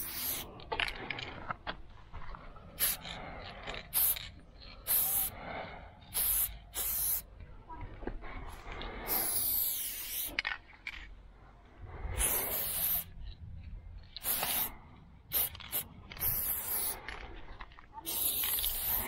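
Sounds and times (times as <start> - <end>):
spray paint can hissing: 0.0 - 0.6, 2.8 - 7.3, 9.0 - 10.4, 12.1 - 13.2, 14.0 - 17.2, 18.0 - 19.0.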